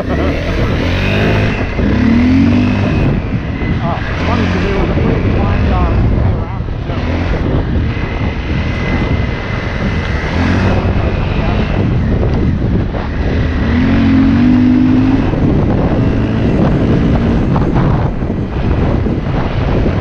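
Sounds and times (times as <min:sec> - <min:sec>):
dirt bike engine revving: 0:00.0 - 0:20.0
wind noise on microphone: 0:00.0 - 0:20.0.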